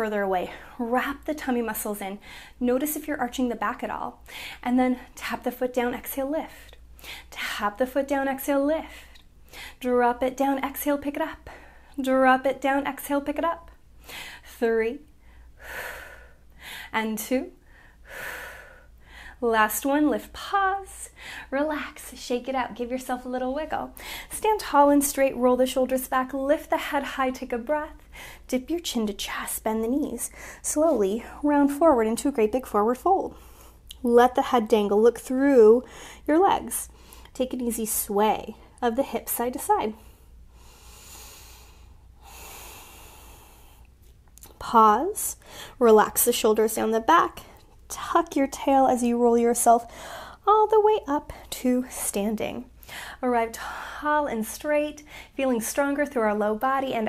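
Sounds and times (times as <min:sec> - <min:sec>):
woman speaking: 0:00.0 - 0:06.7, 0:07.3 - 0:09.0, 0:09.8 - 0:13.7, 0:14.5 - 0:15.0, 0:16.9 - 0:17.6, 0:19.4 - 0:40.0, 0:44.4 - 0:57.0
woman breathing softly: 0:02.2 - 0:02.6, 0:08.9 - 0:09.8, 0:14.0 - 0:14.5, 0:15.2 - 0:17.0, 0:17.6 - 0:19.4, 0:21.1 - 0:21.5, 0:24.0 - 0:24.3, 0:30.3 - 0:30.6, 0:35.8 - 0:36.3, 0:40.0 - 0:43.9, 0:45.4 - 0:45.8, 0:49.9 - 0:50.4, 0:52.8 - 0:54.0, 0:55.0 - 0:55.4
woman breathing hard: 0:40.1 - 0:43.9, 0:49.9 - 0:50.4.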